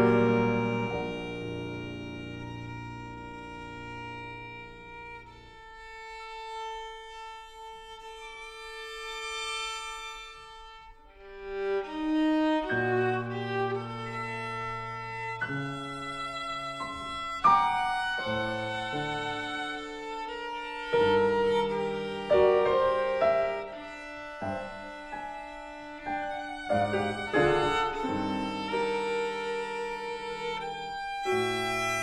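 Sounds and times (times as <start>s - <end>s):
piano: 0.0s - 32.0s
violin: 0.0s - 32.0s.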